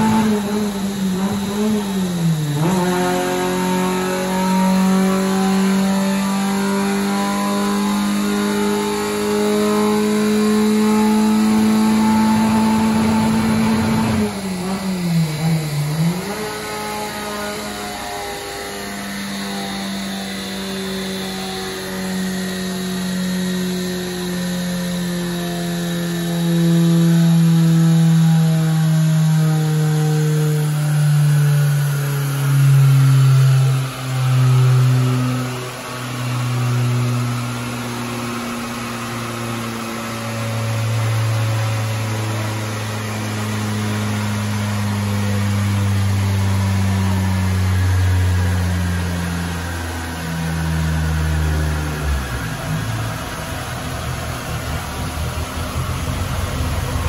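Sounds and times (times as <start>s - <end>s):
car engine revs falling: 0.0s - 18.5s.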